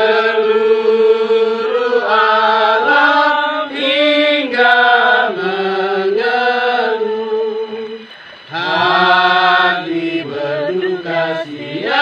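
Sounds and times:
steady low drone note: 0.0 - 12.0.

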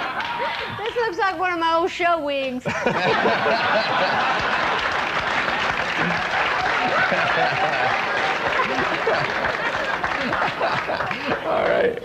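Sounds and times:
audience applauding: 0.0 - 1.1, 3.0 - 12.0
audience laughing: 2.6 - 11.9.

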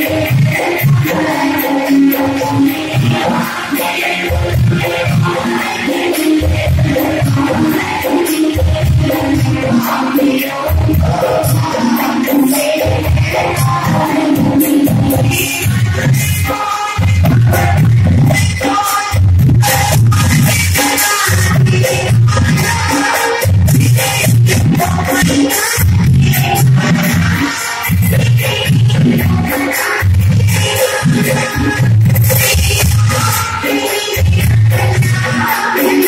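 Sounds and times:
devotional singing over music: 0.0 - 36.0.

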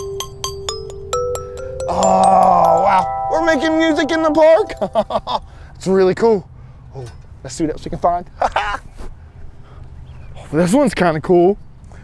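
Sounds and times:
metallophone tubes struck with mallet: 0.0 - 5.6.

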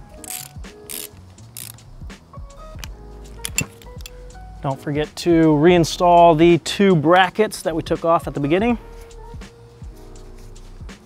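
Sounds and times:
ratchet wrench clicking: 0.1 - 2.0, 2.6 - 4.3.

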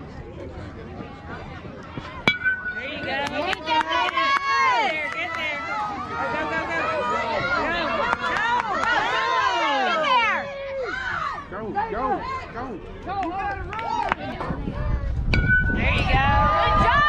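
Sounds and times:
baseball bat striking ball: 2.2 - 4.2, 15.3 - 16.2
crowd shouting and cheering: 2.2 - 17.0.

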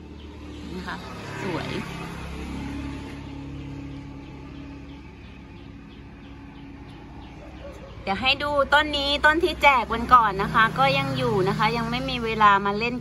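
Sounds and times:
low engine hum: 0.0 - 13.0.

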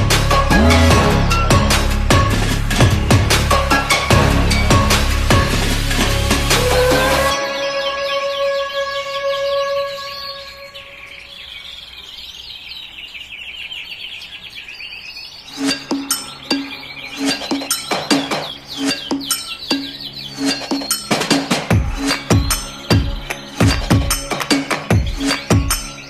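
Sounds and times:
background music with steady beat: 0.0 - 9.4, 15.5 - 26.0
held music notes: 0.0 - 11.5
canary trilling: 6.6 - 26.0.

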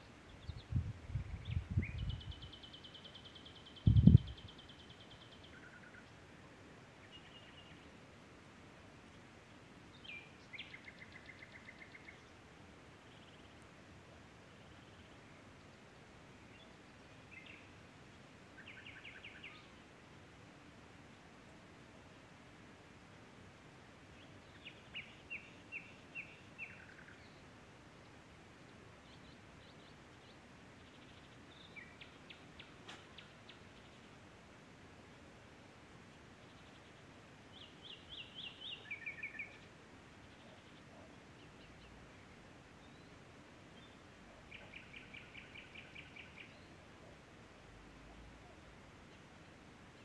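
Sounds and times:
faint steady hiss: 0.0 - 50.0
outdoor background hush: 0.0 - 50.0
songbird singing: 0.0 - 50.0
bird singing whistled notes: 0.3 - 6.0, 37.5 - 42.0, 43.8 - 46.8.

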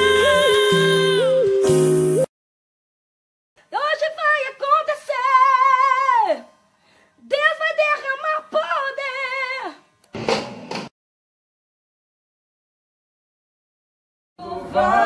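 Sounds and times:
breath: 6.7 - 7.2.

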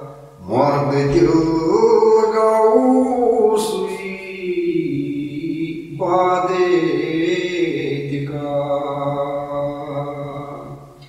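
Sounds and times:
man chanting solo: 0.0 - 10.8.

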